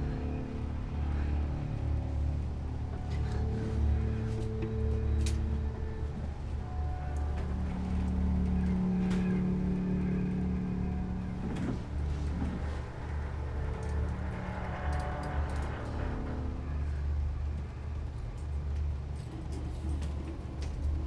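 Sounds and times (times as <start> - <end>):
low pulsing machine drone: 0.0 - 21.0
steady humming tone: 0.0 - 21.0.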